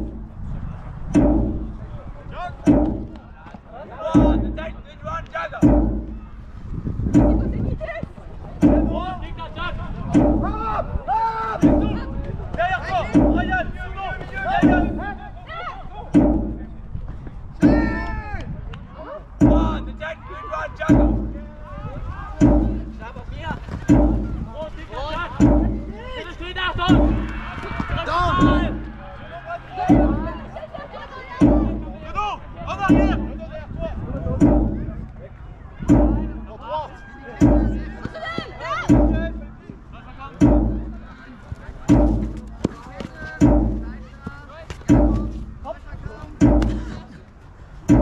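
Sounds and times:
drum beats: 0.0 - 0.4, 1.1 - 1.9, 2.6 - 3.4, 4.0 - 7.9, 8.6 - 11.0, 11.6 - 15.4, 16.2 - 17.0, 17.6 - 18.2, 19.4 - 20.3, 20.9 - 21.7, 22.4 - 29.2, 29.8 - 35.2, 35.9 - 36.7, 37.4 - 48.0
players shouting: 7.5 - 16.8, 17.6 - 33.7, 35.9 - 45.5.

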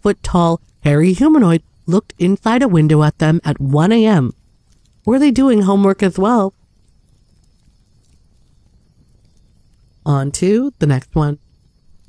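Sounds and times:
low uneven rumble: 0.0 - 12.0.

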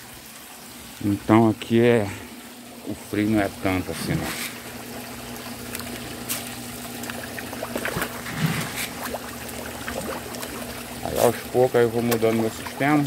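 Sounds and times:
low pump hum: 0.0 - 13.0
water pouring into fish tank: 0.0 - 13.0
small water splashes: 2.5 - 13.0.

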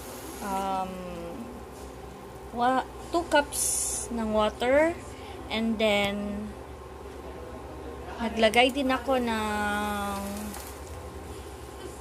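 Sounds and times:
low room hum with hiss: 0.0 - 12.0.

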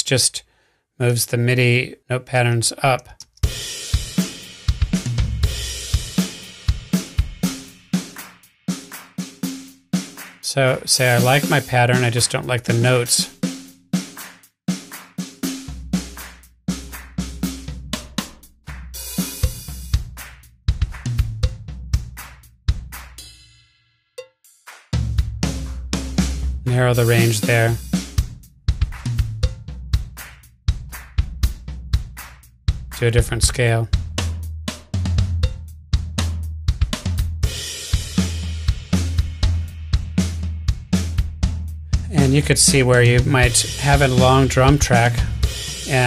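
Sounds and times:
programmed drum beat: 3.3 - 46.0.

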